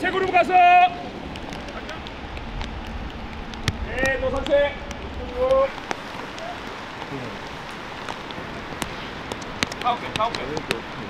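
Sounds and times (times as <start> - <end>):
low rumble: 0.6 - 8.9
light ticks: 1.3 - 11.0.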